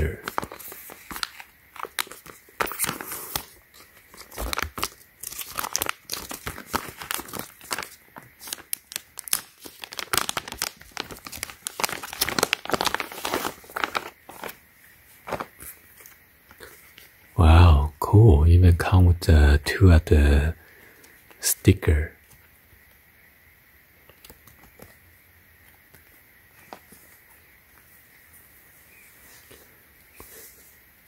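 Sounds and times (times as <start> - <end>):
plastic packaging crinkling: 0.0 - 17.1.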